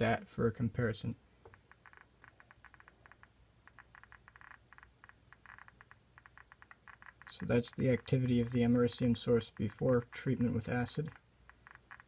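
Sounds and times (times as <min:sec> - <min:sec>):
geiger counter clicking: 0:01.4 - 0:12.0.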